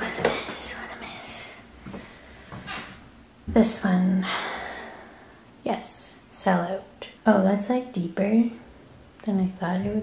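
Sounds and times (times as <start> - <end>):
soft whispering: 0.0 - 1.7.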